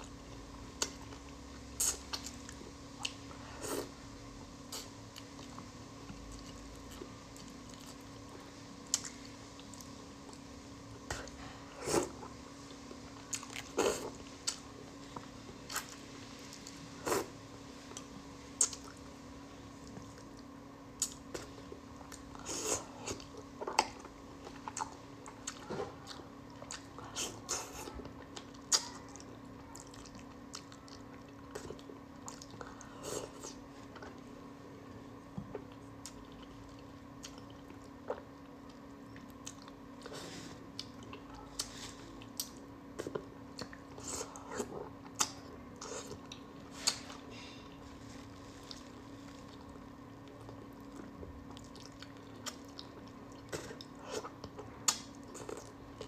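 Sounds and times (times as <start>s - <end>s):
wet mouth chewing: 17.9s - 19.0s, 48.6s - 56.0s.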